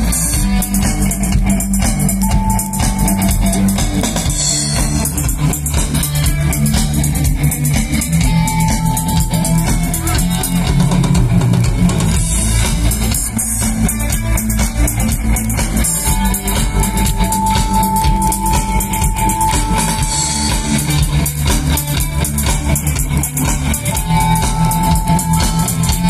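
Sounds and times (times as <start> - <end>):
live rock band playing: 0.0 - 26.0.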